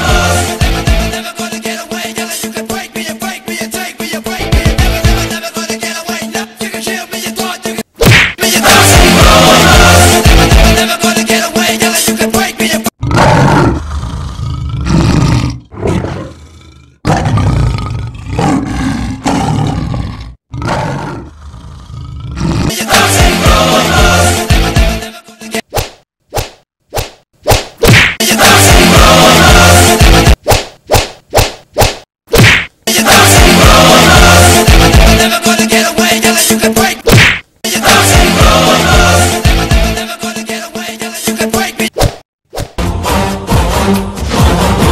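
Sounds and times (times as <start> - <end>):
music with low beat: 4.4 - 5.3
swishing punch sound effect: 8.0 - 8.4, 25.7 - 28.2, 30.2 - 32.7, 37.1 - 37.5, 42.0 - 42.8
loud roar: 13.0 - 22.8.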